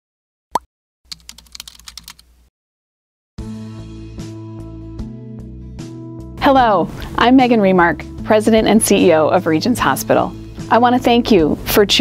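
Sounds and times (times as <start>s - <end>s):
keyboard key clicks: 1.1s - 2.2s.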